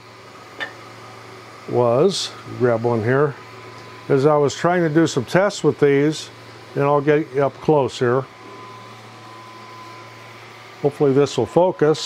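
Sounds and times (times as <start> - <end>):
man speaking: 1.7 - 3.4, 4.1 - 8.3, 10.8 - 12.0.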